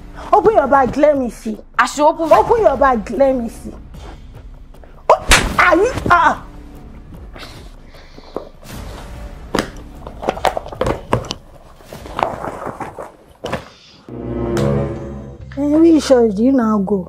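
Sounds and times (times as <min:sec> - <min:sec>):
background music: 0:00.0 - 0:13.4, 0:14.0 - 0:17.0
cloth and plastic rustling: 0:10.1 - 0:13.6.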